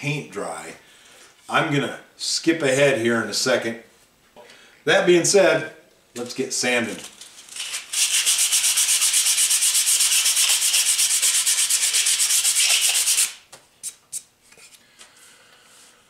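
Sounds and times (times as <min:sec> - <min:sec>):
sandpaper rubbing on wood: 0:07.6 - 0:13.4.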